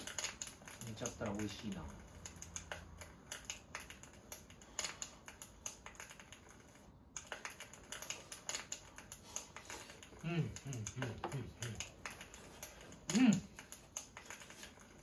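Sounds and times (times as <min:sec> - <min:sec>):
chopsticks clicking on metal: 0:00.0 - 0:06.5.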